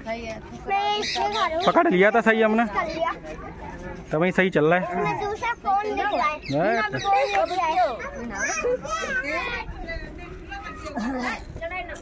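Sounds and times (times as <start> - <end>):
women talking: 0.0 - 1.7, 6.8 - 12.0
child talking: 0.6 - 1.7, 4.9 - 11.9.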